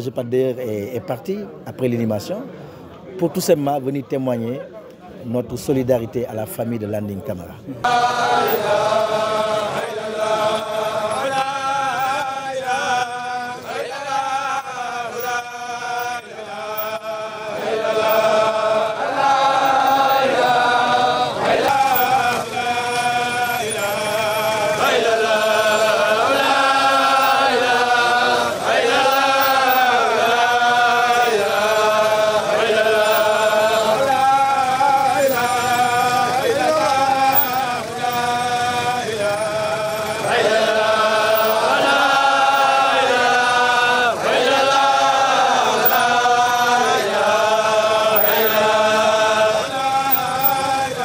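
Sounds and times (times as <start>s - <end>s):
men chanting in unison: 7.8s - 51.0s.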